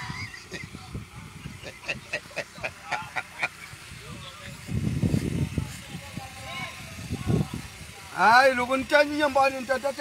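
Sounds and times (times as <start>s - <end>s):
men laughing: 0.0s - 3.9s.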